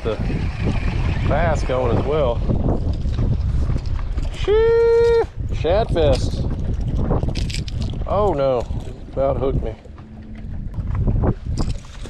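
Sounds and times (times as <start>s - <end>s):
wind rumbling on microphone: 0.0s - 12.0s
man's drawn-out exclamation: 4.4s - 5.3s.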